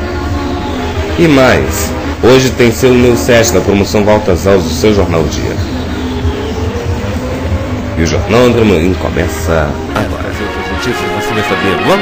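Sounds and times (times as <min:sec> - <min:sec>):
low drone: 0:00.0 - 0:12.0.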